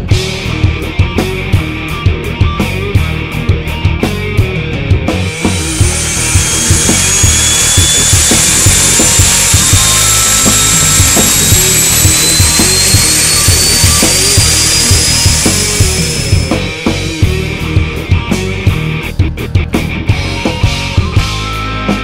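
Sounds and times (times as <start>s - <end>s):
background music with steady beat: 0.0s - 22.0s
turboprop engine whine: 4.9s - 18.4s.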